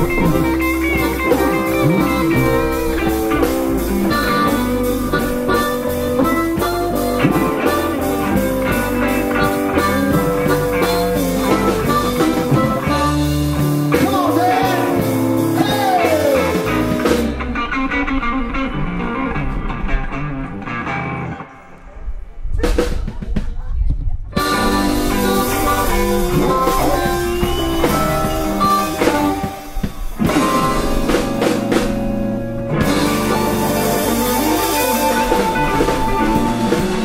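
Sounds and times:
harmonica: 0.0 - 18.1, 24.4 - 37.0
blues band playing: 0.0 - 21.6, 24.4 - 37.0.

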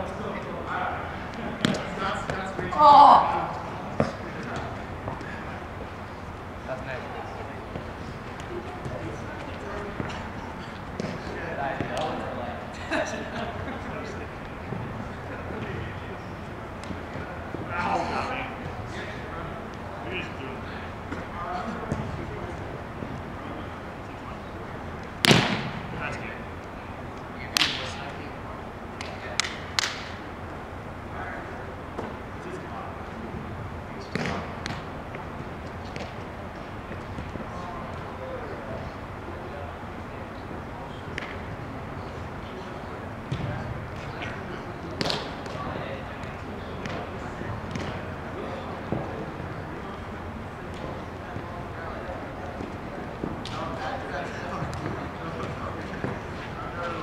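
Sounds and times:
ball being hit: 25.2 - 25.8
hands slapping a ball: 29.0 - 30.1.

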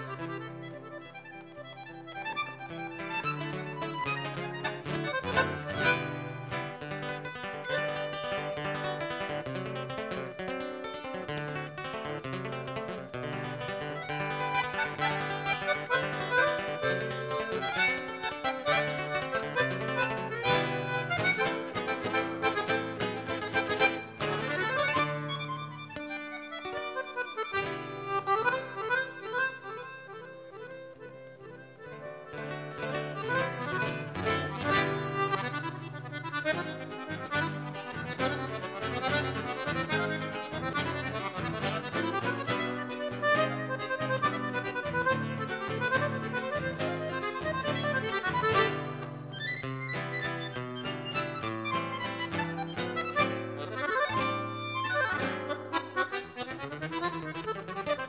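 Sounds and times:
accordion melody: 0.0 - 58.0
nylon-string guitar: 0.0 - 58.0.

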